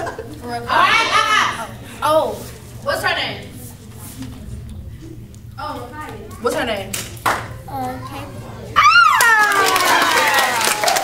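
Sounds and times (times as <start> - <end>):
sharp hand claps: 6.9 - 7.5, 9.2 - 11.0.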